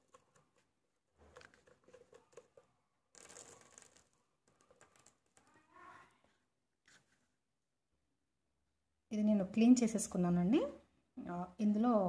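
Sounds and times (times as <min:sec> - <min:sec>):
seeds dropping onto plastic: 0:01.2 - 0:05.7.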